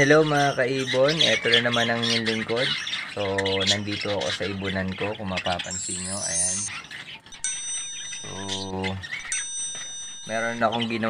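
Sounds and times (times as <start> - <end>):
high bell-like chime: 5.7 - 11.0.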